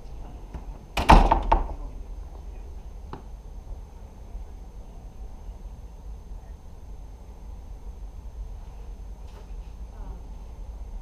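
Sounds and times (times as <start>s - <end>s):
door knocks and thuds: 1.0s - 1.9s.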